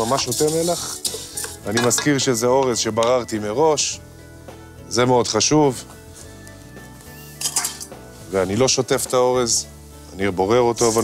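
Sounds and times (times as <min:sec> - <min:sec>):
metal bowls clattering: 0:00.0 - 0:02.2, 0:07.4 - 0:07.9
soft background music: 0:00.0 - 0:11.0.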